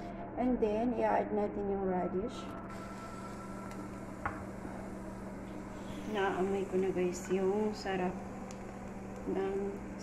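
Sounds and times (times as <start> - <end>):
low steady hum: 0.0 - 10.0
broth boiling with bubbling hiss: 2.7 - 10.0.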